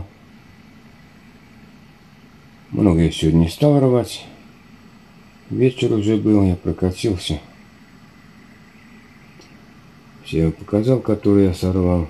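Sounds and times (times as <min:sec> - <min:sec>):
faint low hum and hiss: 0:00.0 - 0:12.0.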